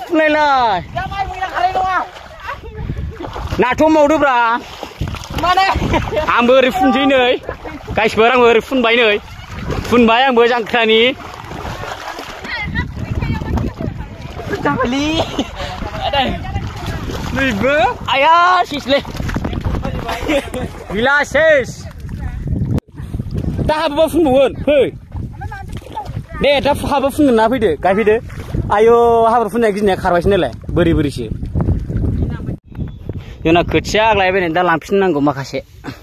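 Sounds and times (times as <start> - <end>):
splashing through muddy water: 0.0 - 32.6
wind rumble on microphone: 0.0 - 34.7
voices: 5.3 - 28.2.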